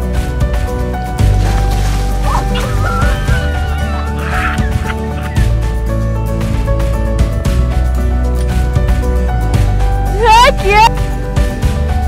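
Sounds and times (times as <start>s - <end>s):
music with heavy bass line: 1.2s - 7.7s.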